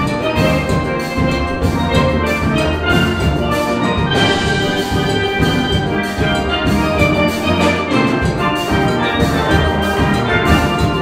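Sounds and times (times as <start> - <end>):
steel pan ensemble playing: 0.0 - 11.0.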